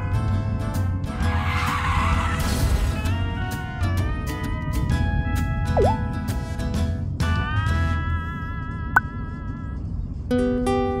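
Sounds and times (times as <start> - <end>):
background music: 0.0 - 9.2.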